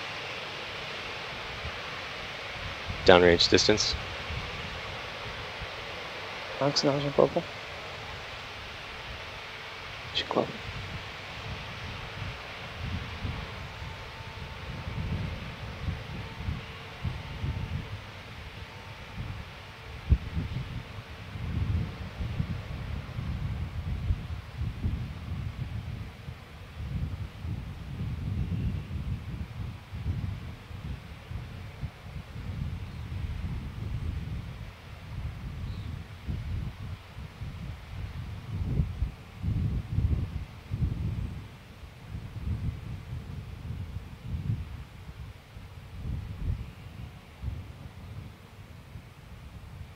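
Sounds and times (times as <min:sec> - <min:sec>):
wind buffeting microphone: 0:00.0 - 0:49.9.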